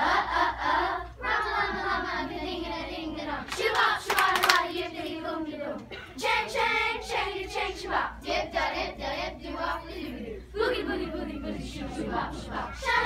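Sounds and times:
children's choir singing: 0.0 - 13.0
sharp hand claps: 3.5 - 4.7.

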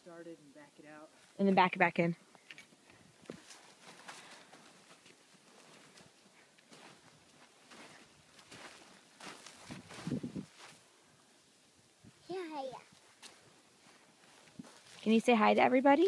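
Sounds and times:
footsteps crunching in snow: 3.3 - 10.9, 12.9 - 15.7.

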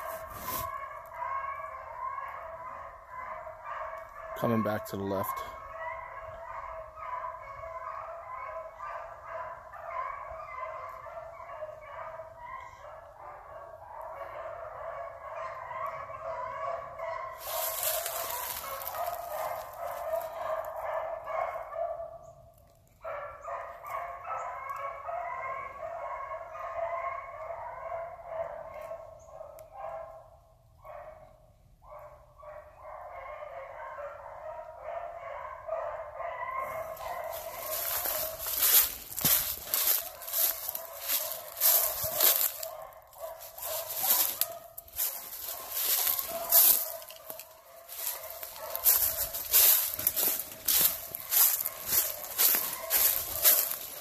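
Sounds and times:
hounds baying: 0.0 - 54.0.

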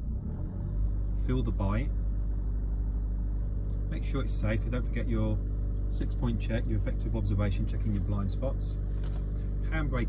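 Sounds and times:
car engine running at low revs: 0.0 - 10.0.

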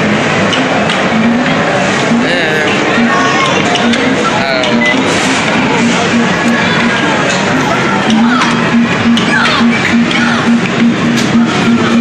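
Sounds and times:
arcade game machines: 0.0 - 12.0.

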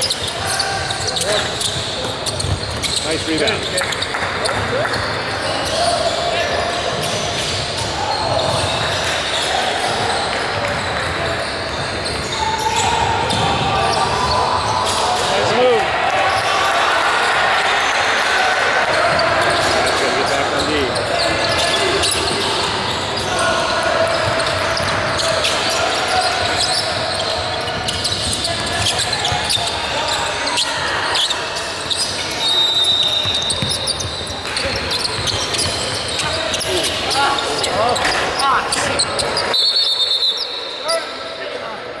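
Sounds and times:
referee's whistle: 30.5 - 38.2, 39.0 - 41.6.

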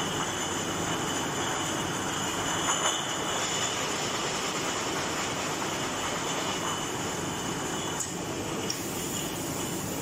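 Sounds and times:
bottle conveyor mechanical noise: 0.0 - 10.0.

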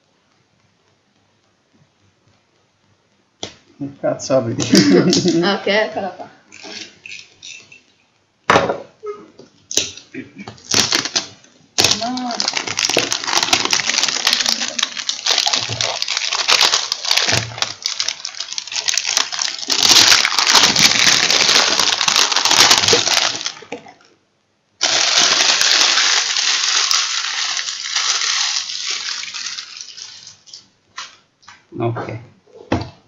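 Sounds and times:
plastic packaging crinkling: 10.6 - 24.0, 24.8 - 31.2.

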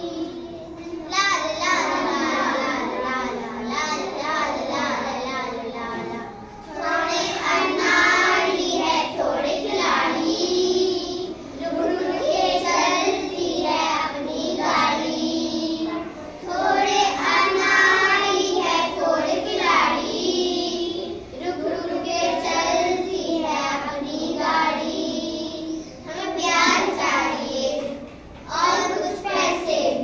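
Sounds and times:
children singing in unison: 0.0 - 30.0.

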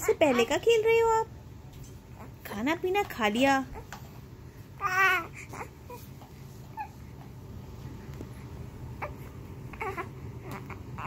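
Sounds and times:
steady low hum: 0.0 - 11.0
newborn baby whimpering: 4.8 - 7.0, 8.9 - 11.0.

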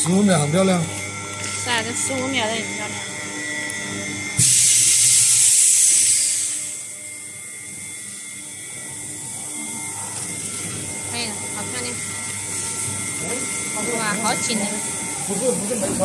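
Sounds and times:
vacuum pump humming: 0.0 - 16.0
vacuum pump rush of air: 4.4 - 6.9.

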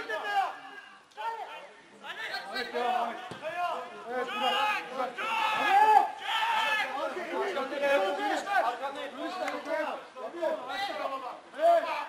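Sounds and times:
men shouting: 0.0 - 8.8.

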